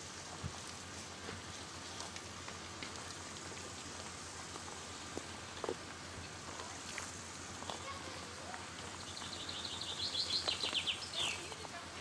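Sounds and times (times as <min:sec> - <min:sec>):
faint scattered ticks: 0:00.0 - 0:11.8
even hiss: 0:00.0 - 0:12.0.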